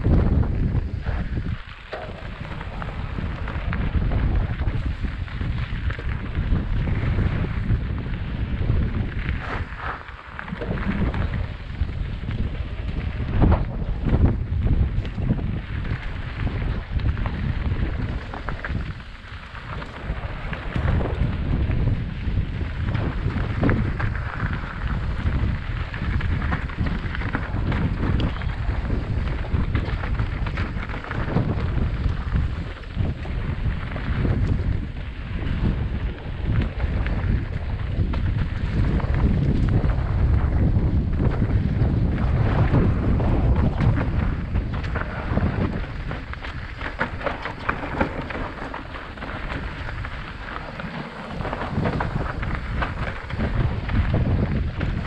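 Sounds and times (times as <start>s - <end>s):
wind buffeting microphone: 0.0s - 55.0s
tyres crunching over dirt and stone: 0.2s - 55.0s
bike knocks and rattles: 10.6s - 55.0s.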